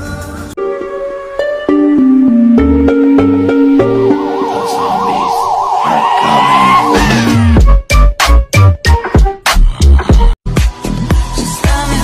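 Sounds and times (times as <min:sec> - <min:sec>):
background music held notes: 0:00.0 - 0:05.6
warbling siren-like tone: 0:03.1 - 0:07.6.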